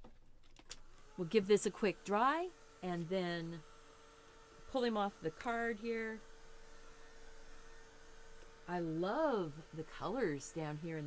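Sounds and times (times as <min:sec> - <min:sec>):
heat tool blowing hot air: 0:00.8 - 0:11.0.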